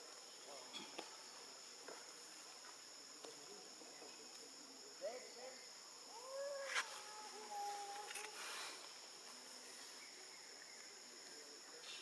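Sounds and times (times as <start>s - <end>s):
forest insects chorus: 0.0s - 12.0s.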